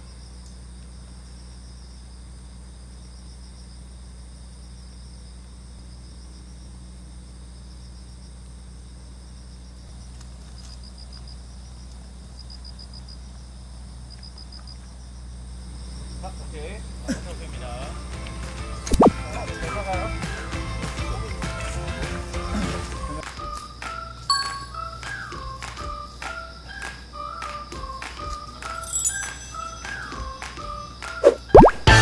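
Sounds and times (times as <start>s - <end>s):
insect trills: 0.0s - 19.1s, 23.2s - 31.8s
crickets chirping: 0.0s - 20.5s, 21.3s - 31.7s.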